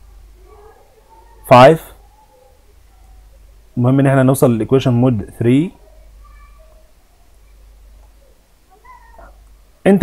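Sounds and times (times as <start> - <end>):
man speaking: 1.4 - 2.0, 3.8 - 5.8
faint wavering animal cry: 5.8 - 7.6, 8.2 - 9.5.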